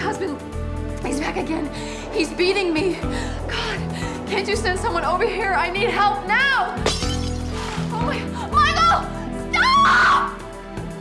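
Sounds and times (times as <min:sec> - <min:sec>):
dramatic background music: 0:00.0 - 0:11.0
woman screaming: 0:08.6 - 0:10.4.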